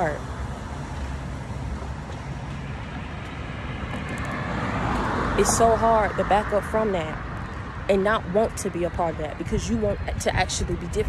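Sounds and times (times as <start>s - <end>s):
road traffic rumble: 0.0s - 11.0s.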